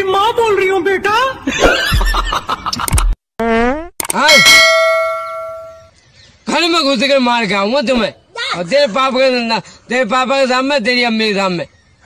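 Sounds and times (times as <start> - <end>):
deep beat thumps: 1.8 - 2.4
bright bell-like ding: 4.2 - 5.9.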